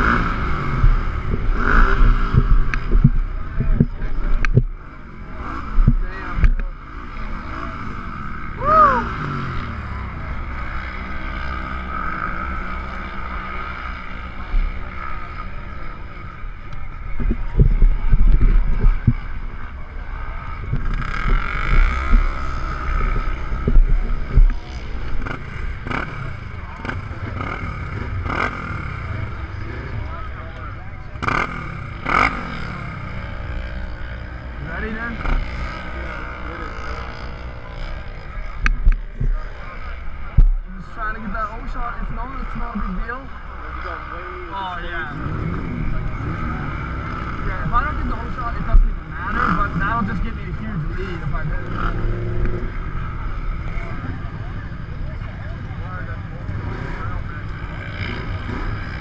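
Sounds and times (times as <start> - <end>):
engines idling: 0.0 - 59.0
faint distant voices: 0.0 - 59.0.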